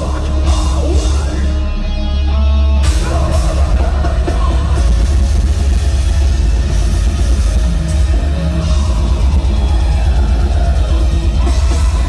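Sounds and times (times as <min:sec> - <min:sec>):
distorted guitars: 0:00.0 - 0:12.0
fast dense drumming: 0:02.9 - 0:12.0.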